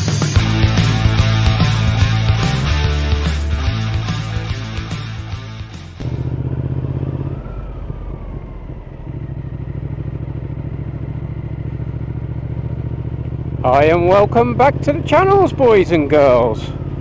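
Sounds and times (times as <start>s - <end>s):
intro music: 0.0s - 6.3s
motorcycle engine running: 0.0s - 17.0s.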